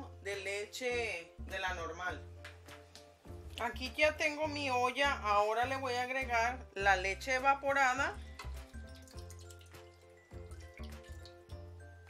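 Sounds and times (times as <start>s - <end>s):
soft background music: 0.0s - 12.0s
milk pouring into pot: 8.2s - 11.7s.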